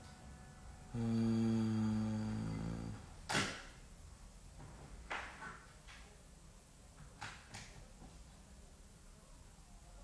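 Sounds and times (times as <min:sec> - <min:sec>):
man humming low note: 0:00.8 - 0:03.2.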